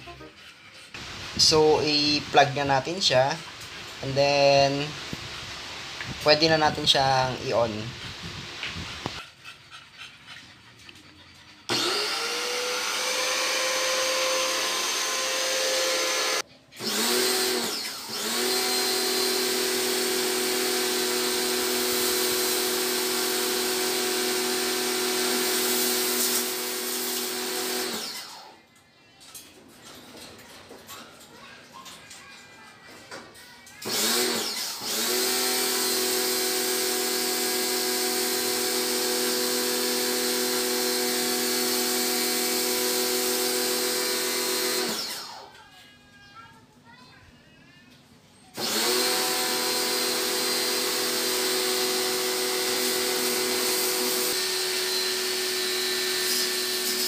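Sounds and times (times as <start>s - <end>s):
pressure washer motor whining: 11.7s - 28.5s, 33.8s - 45.5s, 48.6s - 57.0s.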